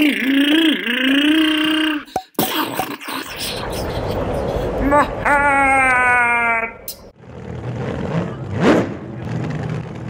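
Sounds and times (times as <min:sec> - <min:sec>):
cartoon voice cry: 0:00.0 - 0:02.1.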